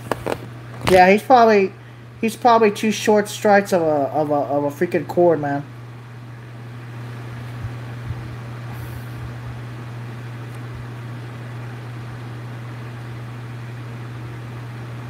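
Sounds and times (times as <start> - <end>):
fan humming: 0.0 - 15.0.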